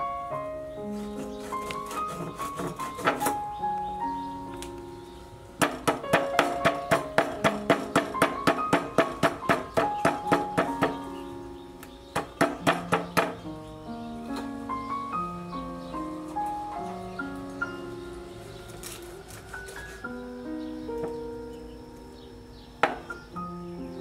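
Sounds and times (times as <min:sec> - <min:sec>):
background music: 0:00.0 - 0:24.0
knife chopping on wooden board: 0:01.3 - 0:03.4, 0:05.6 - 0:11.0, 0:12.2 - 0:13.4.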